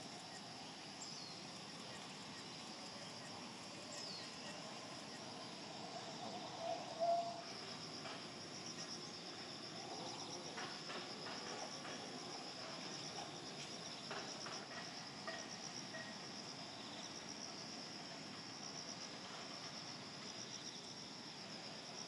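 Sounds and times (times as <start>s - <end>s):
insects chirring: 0.0s - 22.0s.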